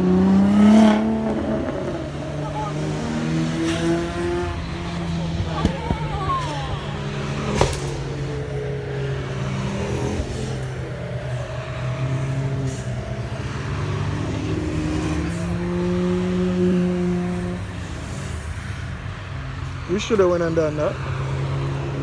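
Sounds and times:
race car engines passing: 0:00.0 - 0:22.0.

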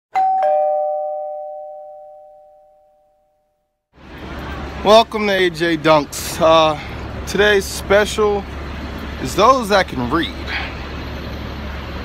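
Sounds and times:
ding-dong doorbell chime: 0:00.1 - 0:03.6.

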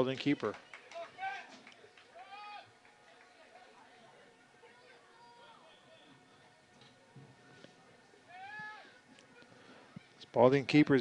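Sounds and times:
distant high-pitched shout: 0:02.2 - 0:02.7, 0:08.3 - 0:09.0.

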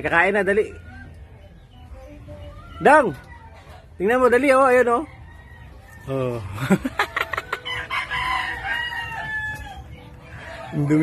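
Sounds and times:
rooster crowing: 0:04.9 - 0:06.5, 0:07.2 - 0:10.9.

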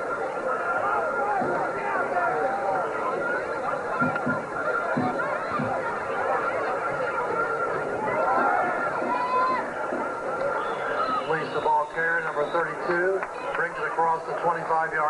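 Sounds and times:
crowd yelling and cheering: 0:00.0 - 0:15.0.

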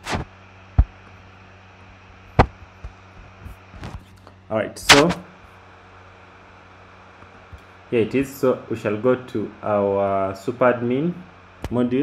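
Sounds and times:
person speaking: 0:04.8 - 0:05.3.

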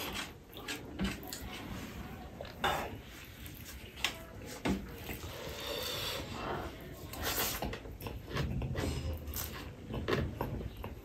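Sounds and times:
person chewing rice: 0:00.0 - 0:11.0.

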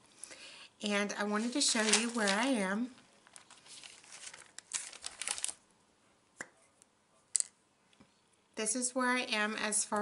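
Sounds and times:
small items rustling on table: 0:01.2 - 0:05.6.

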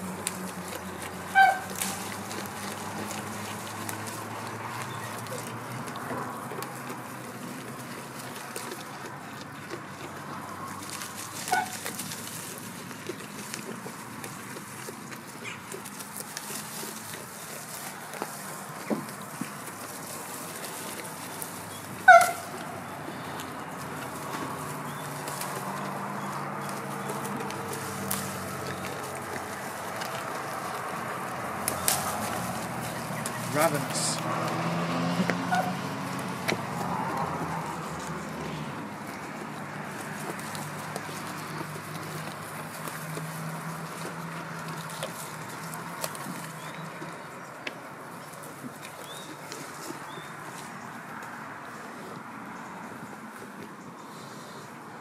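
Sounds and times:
leaves rustling and crackling: 0:00.0 - 0:52.2
goat crying: 0:01.3 - 0:02.6.

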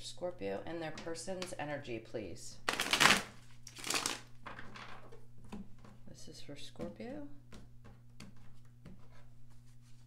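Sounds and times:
cards being shuffled: 0:02.7 - 0:04.3.

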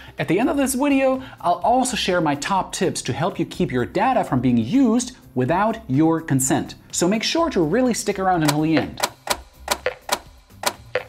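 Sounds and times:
sharp clicks and pops: 0:08.4 - 0:11.0.

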